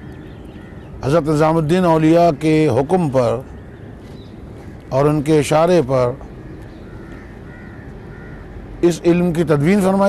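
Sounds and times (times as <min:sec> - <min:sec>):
bird calling faintly: 0:00.0 - 0:09.0
man talking: 0:01.0 - 0:03.5, 0:04.9 - 0:06.2, 0:08.8 - 0:10.0.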